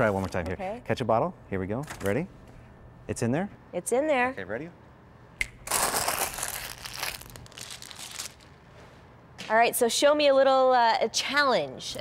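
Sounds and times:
wrapping being crumpled: 5.7 - 8.6.

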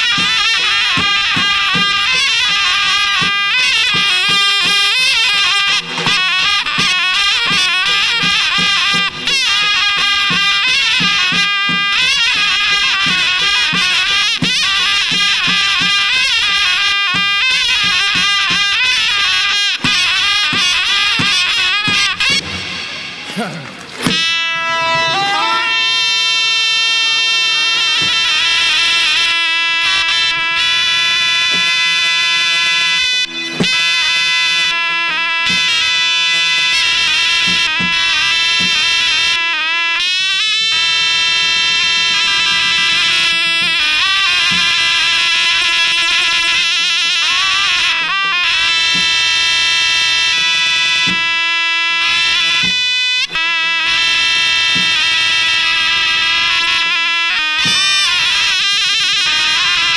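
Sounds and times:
large drum beat: 0.0 - 24.6
shawms playing reedy melody: 0.0 - 59.9.

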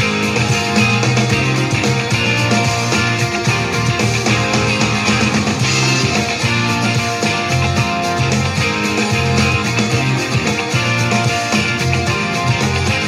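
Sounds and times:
electric bass line: 0.0 - 13.0
electric guitar: 0.0 - 13.0.

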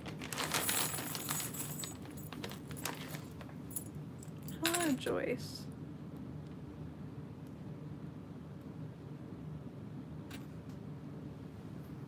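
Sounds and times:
small metal pieces clinking: 0.3 - 5.0.

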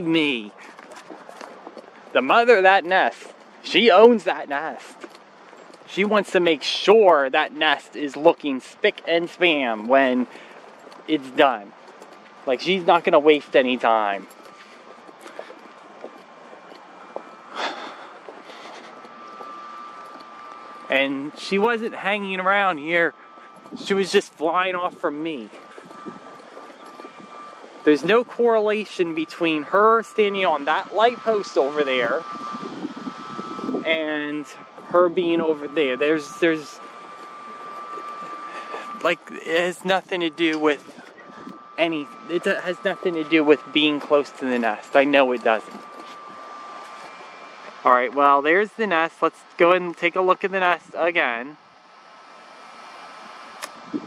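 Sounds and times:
faint steady high tone: 0.0 - 0.7, 2.1 - 11.8, 12.4 - 51.6
man speaking: 0.0 - 0.8, 2.2 - 5.0, 5.9 - 10.4, 11.1 - 11.7, 12.5 - 14.3, 20.9 - 23.2, 23.8 - 25.6, 27.9 - 32.2, 33.8 - 36.8, 38.5 - 41.0, 41.8 - 45.8, 47.9 - 51.6
faint footsteps: 0.0 - 50.9
outdoor background noise: 0.0 - 54.0
wind noise on microphone: 21.6 - 28.4, 29.4 - 47.2, 53.0 - 54.0.

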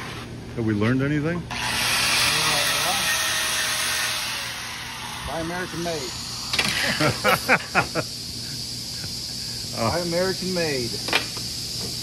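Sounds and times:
angle grinder grinding metal: 1.5 - 7.6.

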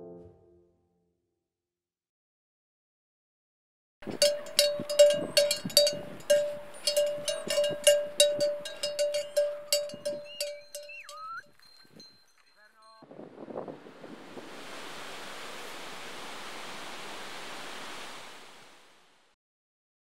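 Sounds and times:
bell-like jingle notes: 4.0 - 13.0
gliding whistle: 10.3 - 11.4
steady hiss like wind: 13.1 - 19.4.

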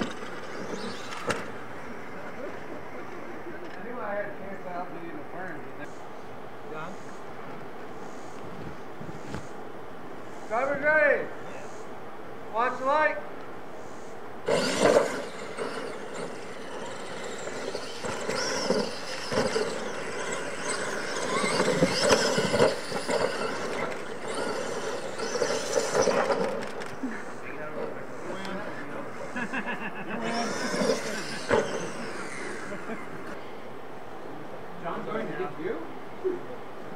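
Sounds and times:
toy truck motors whining: 0.0 - 3.8, 14.4 - 33.4.

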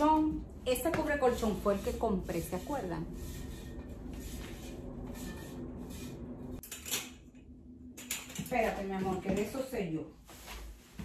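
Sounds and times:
low room hum: 0.0 - 11.0
rustling and handling noises: 8.0 - 11.0.

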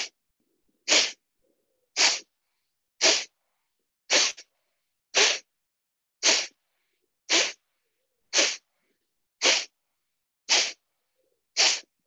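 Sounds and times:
forceful exhalations through nose: 0.9 - 1.2, 2.0 - 2.3, 3.0 - 3.4, 4.1 - 4.5, 5.2 - 5.5, 6.2 - 7.6, 8.3 - 9.8, 10.5 - 10.8, 11.6 - 12.0.

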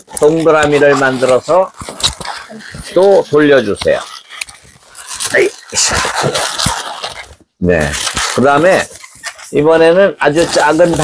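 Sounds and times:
balloon squeaking and rubbing: 0.0 - 11.0
balloon squeal: 0.7 - 9.5.

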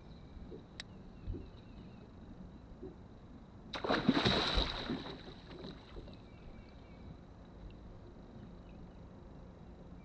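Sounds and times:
light wind: 0.0 - 10.0
fish thrashing splashes: 3.8 - 6.0.

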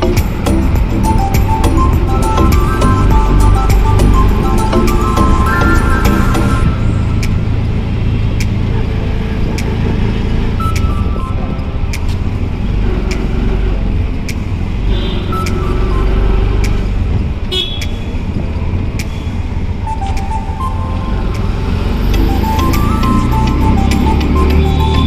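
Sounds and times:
engine and road rumble: 0.0 - 25.0
car horn honks: 14.8 - 16.4, 17.5 - 18.1.

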